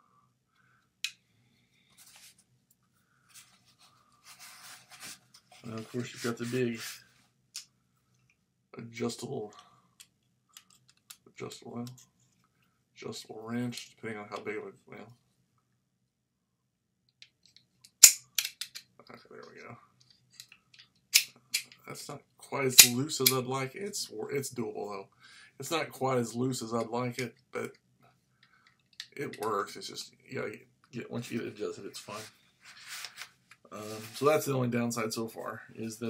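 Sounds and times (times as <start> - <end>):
tools rustling and scraping in case: 3.3 - 7.1, 32.1 - 34.3.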